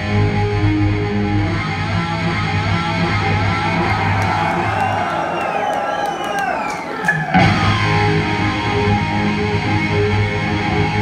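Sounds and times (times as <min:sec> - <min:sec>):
electric guitar bending notes: 0:00.0 - 0:04.1, 0:07.0 - 0:11.0
heavy metal band playing: 0:07.0 - 0:11.0.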